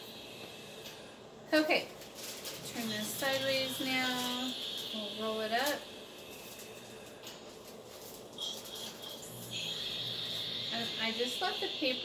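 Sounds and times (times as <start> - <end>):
high steady shrill tone: 2.2 - 12.0.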